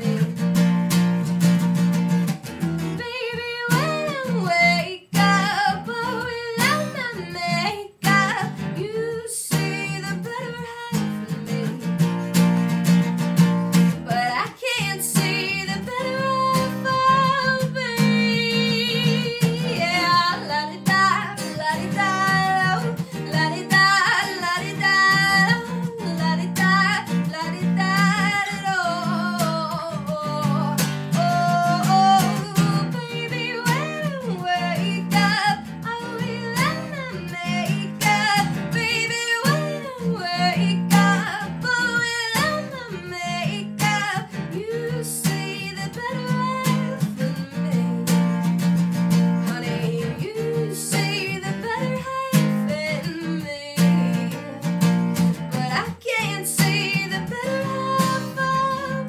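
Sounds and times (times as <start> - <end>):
acoustic guitar chords: 0.0 - 59.0
woman singing: 0.0 - 59.0.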